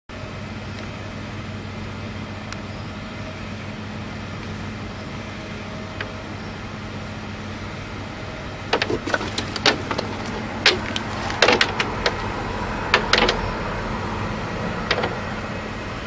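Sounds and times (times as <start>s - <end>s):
low mechanical hum: 0.1s - 16.0s.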